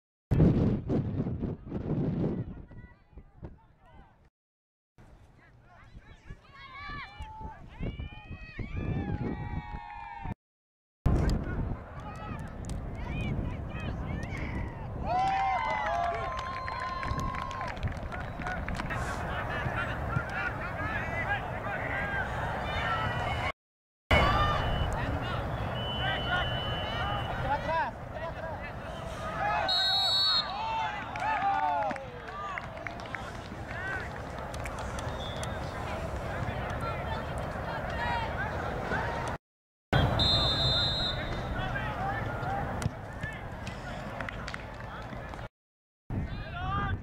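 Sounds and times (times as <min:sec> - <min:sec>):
referee's whistle: 0:24.2 - 0:27.5, 0:28.9 - 0:31.2, 0:35.0 - 0:35.7, 0:40.0 - 0:41.5.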